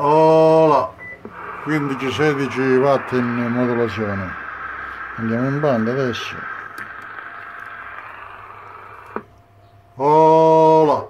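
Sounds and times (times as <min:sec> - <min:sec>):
radio static hiss: 0:01.2 - 0:09.3.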